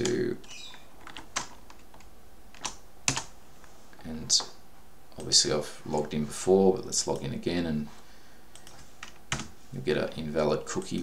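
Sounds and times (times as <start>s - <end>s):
computer keyboard keys clicking: 1.0s - 3.3s, 8.5s - 9.5s.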